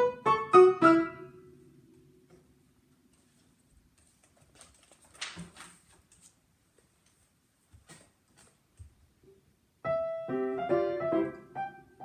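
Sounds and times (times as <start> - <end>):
paper rustling: 3.0 - 9.0.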